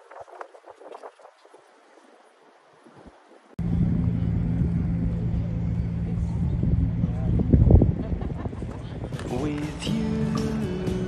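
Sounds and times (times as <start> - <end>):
engine hum with low rumble: 3.6 - 11.0.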